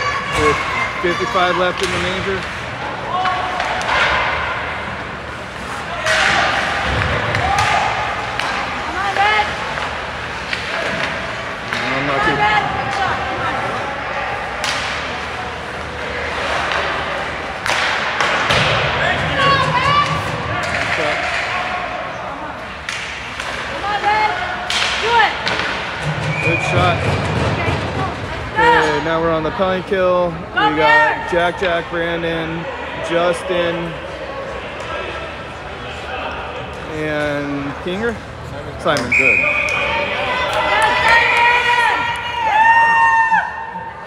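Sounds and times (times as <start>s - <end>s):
puck and sticks hitting boards: 1.6s - 4.8s, 5.8s - 13.4s, 14.6s - 21.8s, 22.8s - 28.7s
voices shouting: 39.2s - 44.0s.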